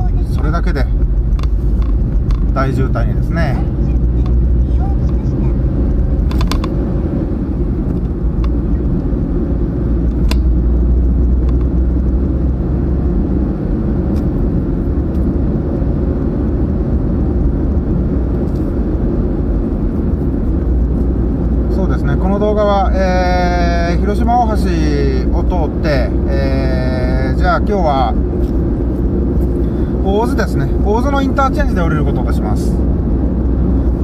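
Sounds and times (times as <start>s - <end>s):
car engine and tyre rumble: 0.0s - 34.0s.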